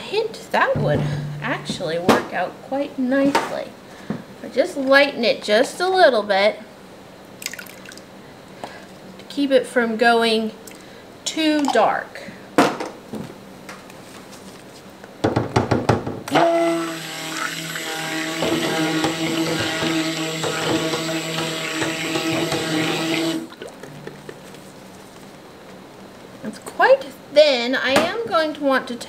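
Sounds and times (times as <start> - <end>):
blender knocking on tub: 0.8 - 2.4, 18.2 - 23.4
stick blender motor whine: 16.3 - 23.5.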